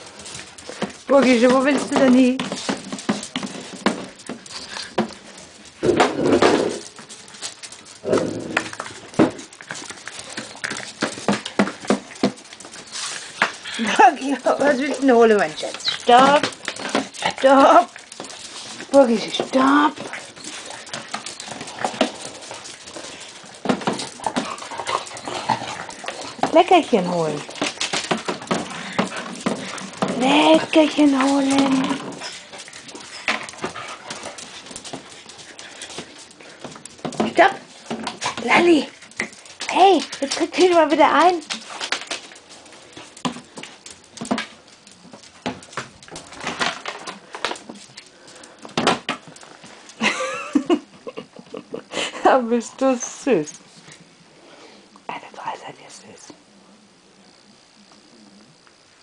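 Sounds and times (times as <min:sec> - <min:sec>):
dog claws clicking on hard floor: 0:00.0 - 0:50.0
plastic box scraping on floor: 0:05.8 - 0:07.0.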